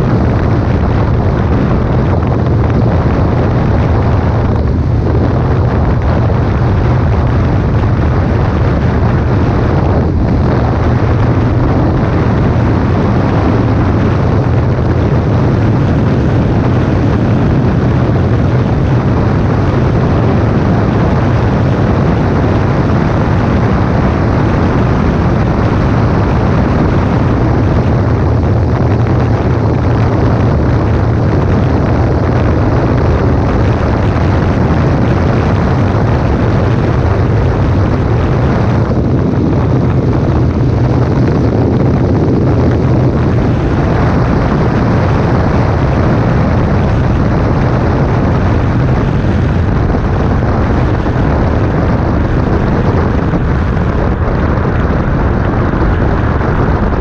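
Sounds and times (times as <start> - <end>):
scooter engine drone: 0.0 - 57.0
wind rush: 0.0 - 57.0.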